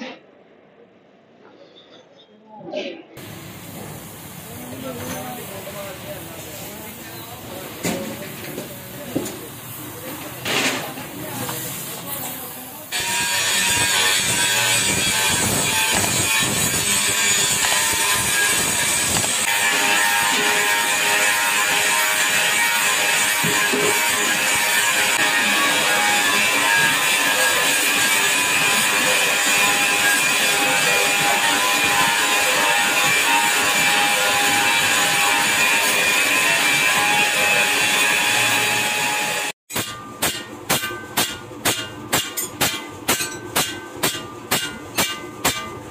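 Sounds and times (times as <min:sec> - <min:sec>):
hammer blows on iron pan: 0:12.9 - 0:45.9
metal-spinning machine screeching: 0:12.9 - 0:45.9.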